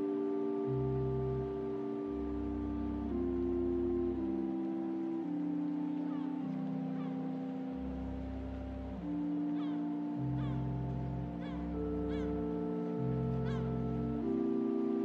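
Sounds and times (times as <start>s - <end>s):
organ chords: 0.0s - 15.0s.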